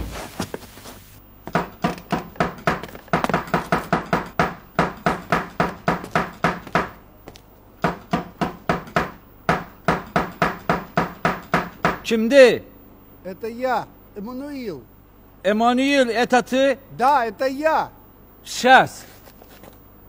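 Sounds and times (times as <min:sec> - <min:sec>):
knocking on a door: 0:01.5 - 0:07.0, 0:07.8 - 0:12.0.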